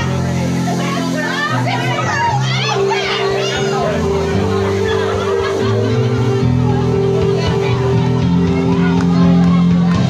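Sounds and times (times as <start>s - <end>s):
crowd singing and shouting: 0.0s - 10.0s
live piano band music: 0.0s - 10.0s.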